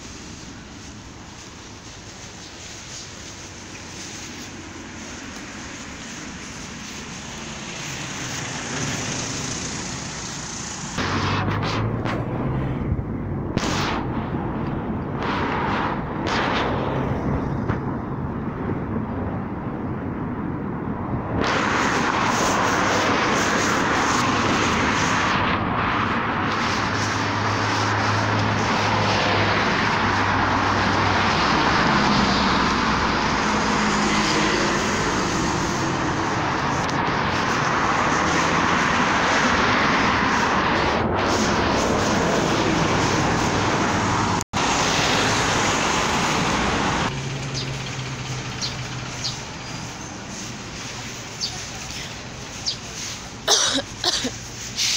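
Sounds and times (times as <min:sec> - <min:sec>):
low engine hum: 0:00.0 - 0:54.7
road traffic noise: 0:00.0 - 0:54.9.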